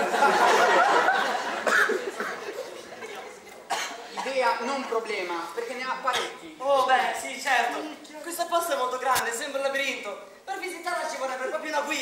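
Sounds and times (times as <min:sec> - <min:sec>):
short cough: 0:01.6 - 0:02.6, 0:03.7 - 0:04.4.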